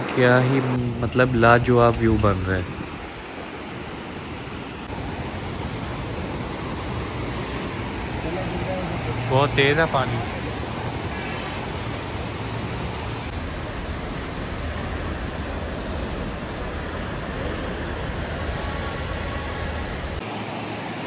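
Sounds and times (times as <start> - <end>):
river rushing over rocks: 1.4 - 14.0.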